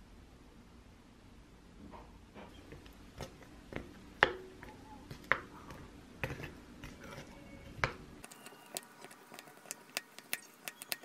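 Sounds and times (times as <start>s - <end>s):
metal spoon clinking ceramic bowl: 8.2s - 11.0s.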